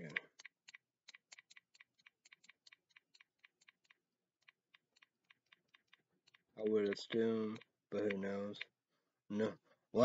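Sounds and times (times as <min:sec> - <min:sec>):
typing on computer keyboard: 0:00.0 - 0:08.8.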